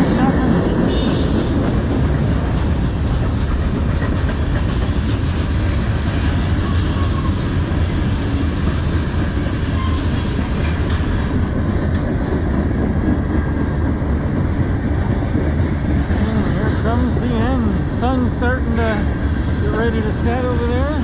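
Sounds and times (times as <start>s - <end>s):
freight cars rumbling on rails: 0.0s - 21.0s.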